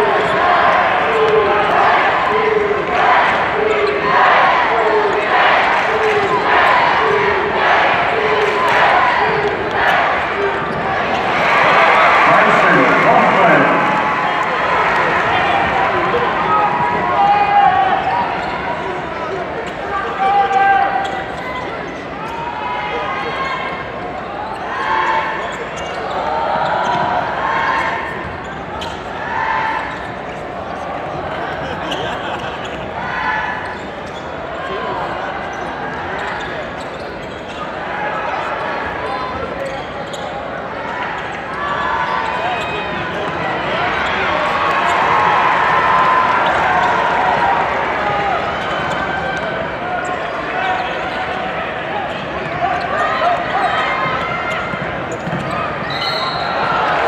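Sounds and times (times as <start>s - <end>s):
crowd chatter: 0.0s - 57.0s
sneaker squeaks: 18.0s - 19.0s, 20.5s - 22.5s, 23.4s - 30.8s, 31.8s - 34.8s, 35.4s - 45.1s, 48.4s - 57.0s.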